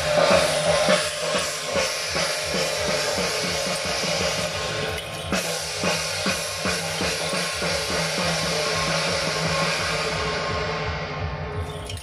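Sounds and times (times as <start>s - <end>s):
hand cymbals clashing: 0.0s - 10.8s, 11.4s - 12.0s
fast steady drumbeat: 0.0s - 12.0s.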